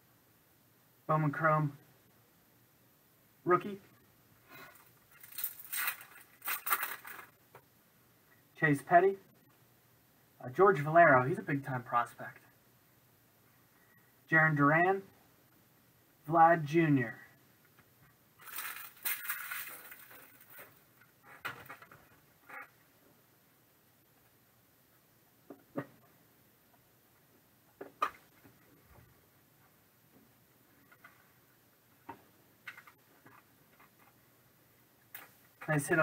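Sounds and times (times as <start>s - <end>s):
trading cards and wrappers rustling: 4.5s - 7.4s, 18.4s - 22.7s.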